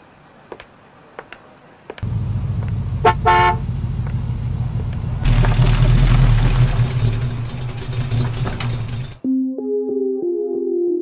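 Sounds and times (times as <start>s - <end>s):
car engine rumbling: 2.0s - 9.2s
car horn toot: 2.8s - 4.4s.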